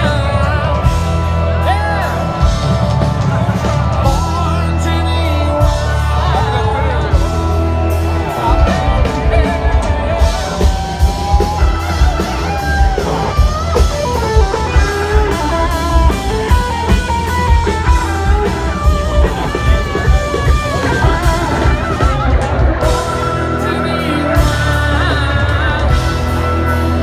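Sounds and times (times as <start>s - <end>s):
drum kit beat: 0.0s - 27.0s
electric guitars: 0.0s - 27.0s.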